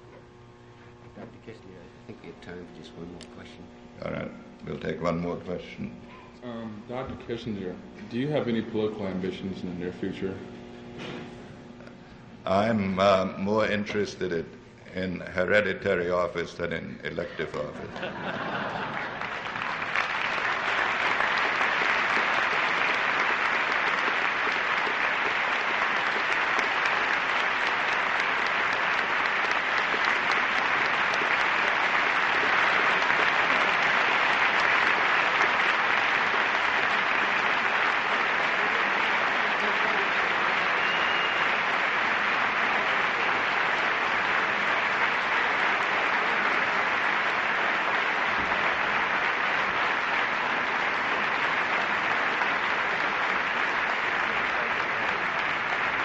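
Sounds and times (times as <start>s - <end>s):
audience laughing: 17.2s - 20.0s
audience applauding: 17.4s - 56.0s.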